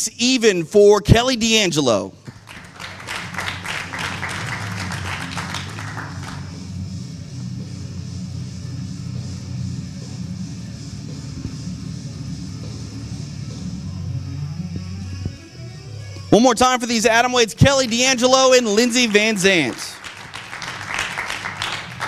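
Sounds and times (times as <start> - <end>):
background music with bass: 2.2 - 22.0
crowd applause: 2.3 - 6.6, 17.8 - 22.0.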